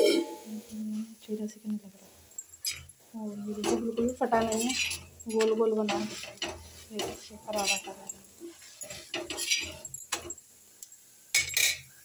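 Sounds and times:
metal spatula scraping a griddle: 2.6s - 10.4s, 11.3s - 11.9s.

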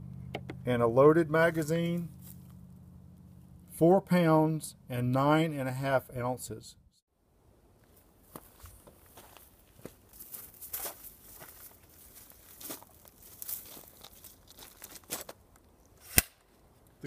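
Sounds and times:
rustling and handling noises: 7.9s - 15.9s.

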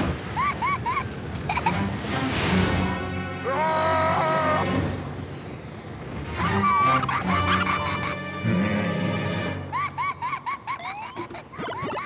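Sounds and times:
cartoon soundtrack music: 6.2s - 12.0s.

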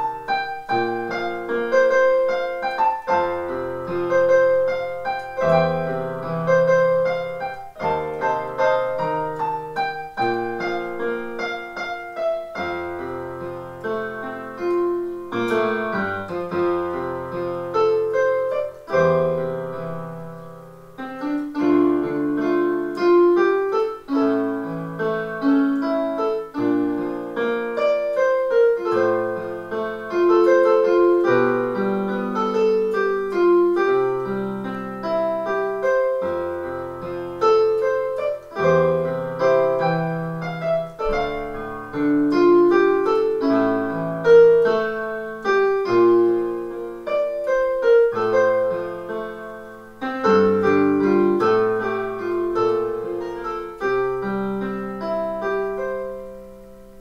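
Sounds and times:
solo piano: 0.0s - 57.0s.

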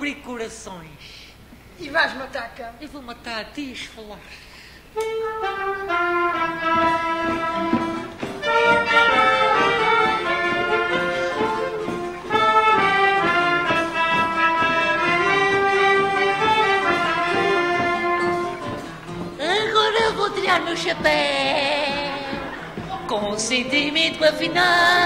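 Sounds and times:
instrumental band music: 4.9s - 25.0s.

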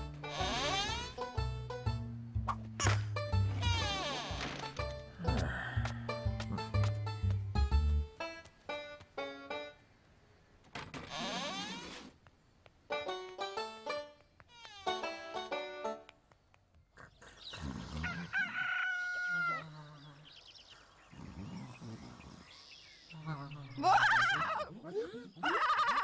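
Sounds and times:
rooster crowing: 18.0s - 19.7s.

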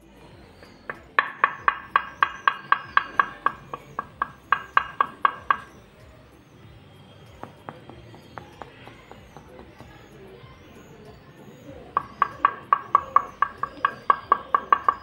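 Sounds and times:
knuckles knocking on tile: 1.2s - 5.7s, 7.4s - 10.0s.

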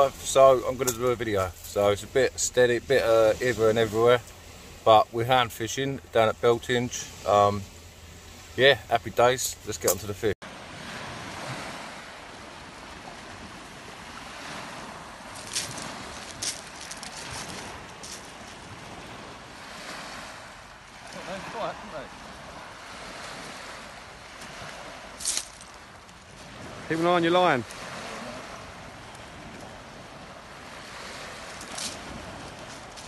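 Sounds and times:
waves washing on shingle: 0.0s - 33.0s
wind on microphone: 10.7s - 21.1s, 22.0s - 33.0s.

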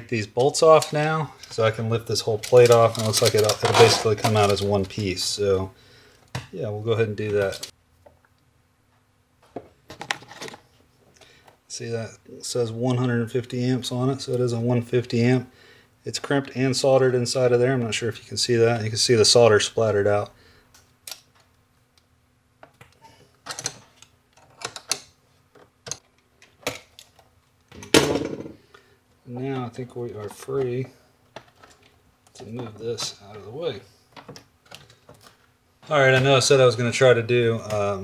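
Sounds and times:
cables rustling: 0.3s - 5.4s.

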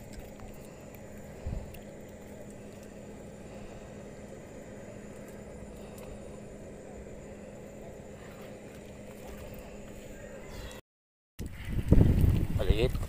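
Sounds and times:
low machine-like drone: 0.0s - 10.8s.

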